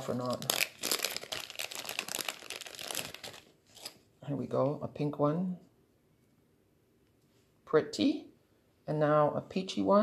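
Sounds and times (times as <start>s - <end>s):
paper crinkling and rustling: 0.0s - 4.0s.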